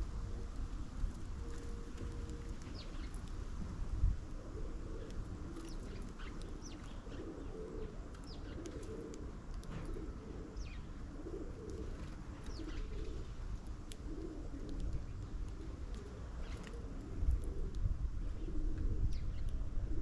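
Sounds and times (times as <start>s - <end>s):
small birds chirping: 1.4s - 3.5s, 4.7s - 17.8s, 18.4s - 19.6s
pigeons cooing: 4.2s - 20.0s.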